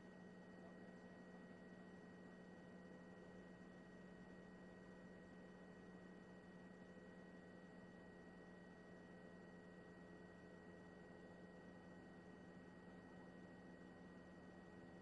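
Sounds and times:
faint electrical hum: 0:00.0 - 0:15.0.

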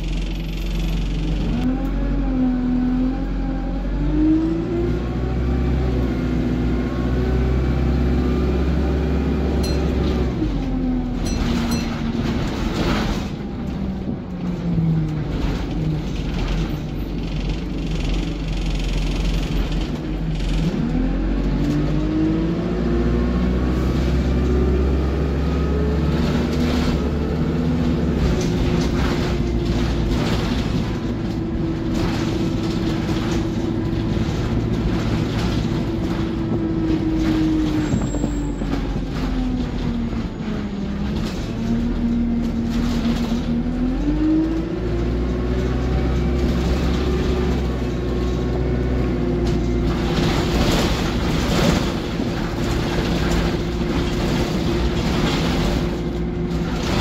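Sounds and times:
diesel bus engine rumble: 0:00.0 - 0:57.0.

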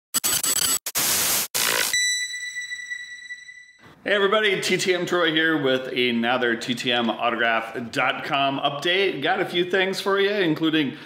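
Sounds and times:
static-like noise bursts: 0:00.2 - 0:01.9
high bell-like ding: 0:02.0 - 0:03.8.

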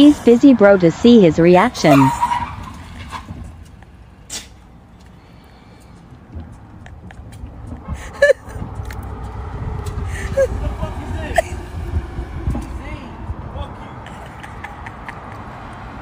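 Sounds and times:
delivery truck rumble: 0:00.0 - 0:16.0.

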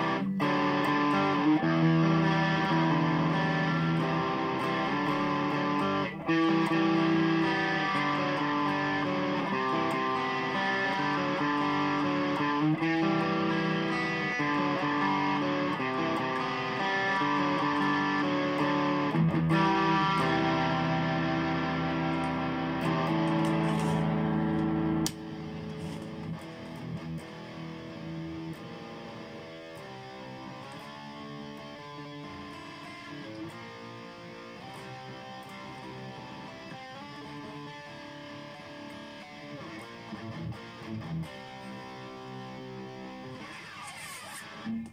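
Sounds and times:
amplified electric guitar: 0:00.0 - 0:44.9.

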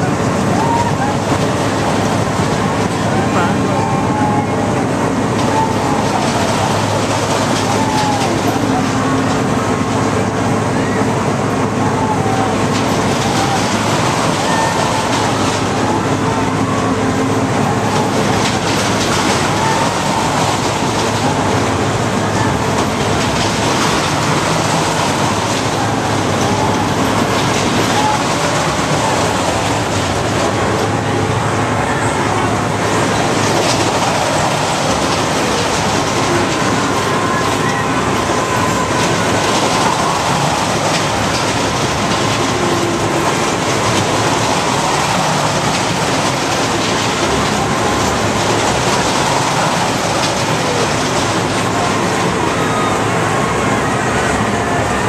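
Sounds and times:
ride cars rolling on track: 0:00.0 - 0:55.0.

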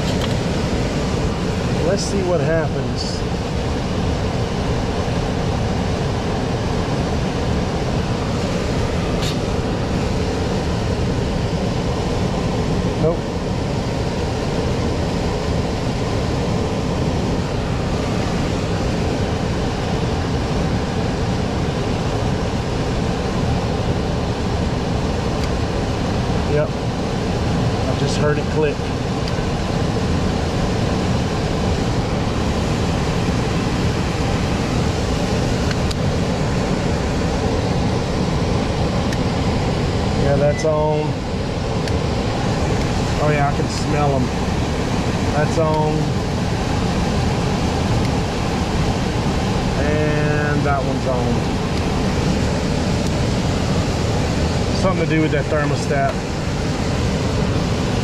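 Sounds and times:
air handler blower running: 0:00.0 - 0:58.0.

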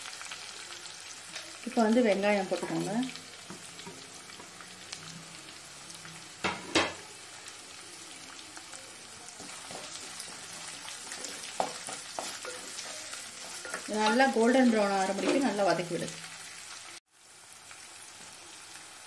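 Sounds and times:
shallots sizzling in oil: 0:00.0 - 0:19.0
spatula stirring against clay pot: 0:09.4 - 0:14.3.

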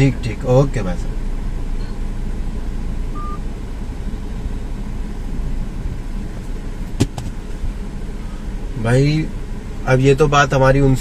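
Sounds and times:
car engine idling: 0:00.0 - 0:11.0
short high beep: 0:03.2 - 0:03.4.

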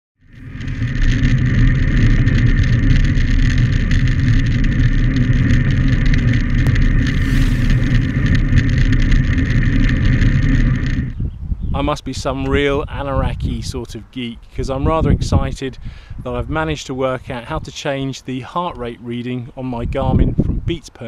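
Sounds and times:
wind rushing over microphone: 0:00.3 - 0:17.8, 0:19.8 - 0:20.8.

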